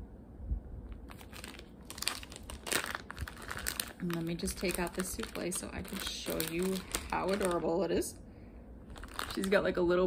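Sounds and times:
plastic bag crinkling: 0.9s - 8.2s, 8.8s - 10.0s.

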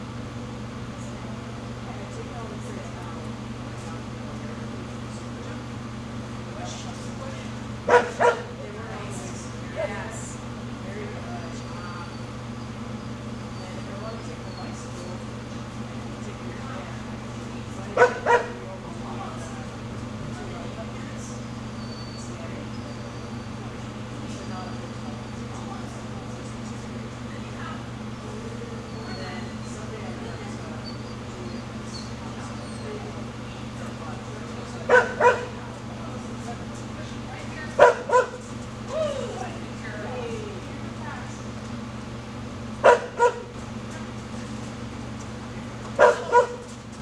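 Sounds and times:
steady low hum: 0.0s - 47.0s
small dog barking: 7.9s - 8.6s, 18.0s - 18.6s, 34.8s - 35.6s, 37.8s - 38.4s, 42.8s - 43.5s, 46.0s - 46.7s.

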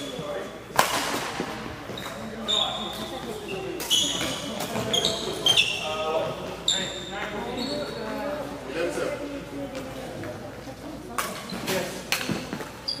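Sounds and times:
rackets hitting shuttlecock: 0.7s - 2.2s
sneakers squeaking on wooden floor: 1.4s - 8.2s, 11.4s - 13.0s.

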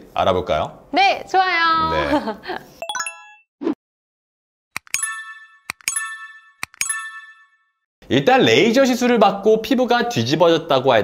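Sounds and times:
button clicks: 4.8s - 7.2s.

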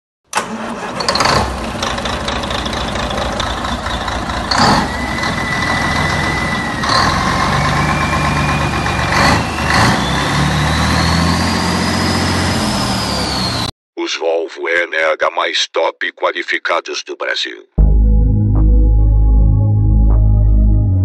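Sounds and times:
diesel truck engine running: 0.3s - 13.7s
thin rising whine: 4.4s - 13.7s.

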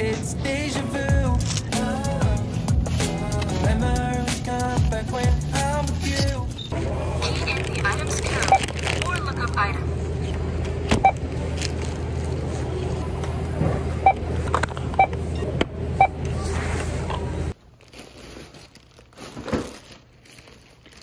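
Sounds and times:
checkout scanner beeping: 0.0s - 17.5s
hum of large store: 0.0s - 21.0s.

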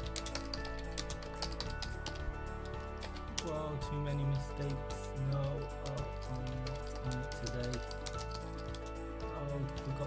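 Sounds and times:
keyboard keys clicking: 0.0s - 3.7s, 4.6s - 10.0s
background music: 0.0s - 10.0s.

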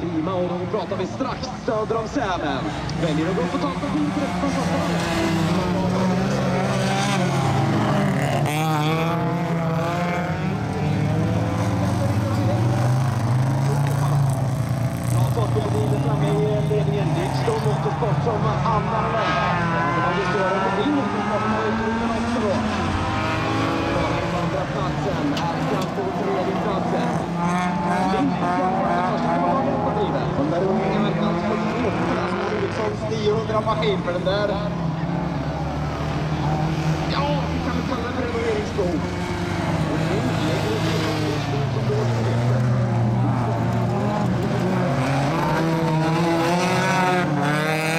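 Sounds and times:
racing car engines revving: 0.0s - 47.9s.

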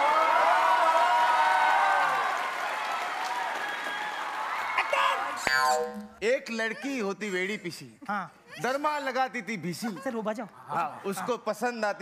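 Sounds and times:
audience clapping and cheering: 0.0s - 5.5s.

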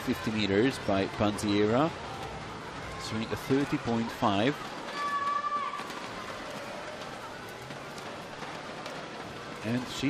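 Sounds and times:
crowd hubbub: 0.0s - 10.0s
swimmers splashing: 0.0s - 10.0s.

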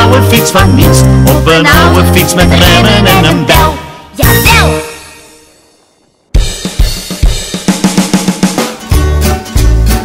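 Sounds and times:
drum kit playing a quick beat: 6.3s - 10.0s.

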